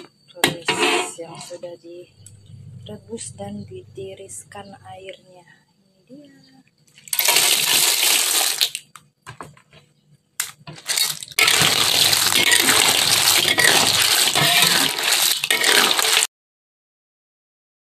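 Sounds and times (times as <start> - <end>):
clams splashing into broth: 7.1 - 8.8, 10.8 - 16.3
clam shells rattling: 10.8 - 16.3.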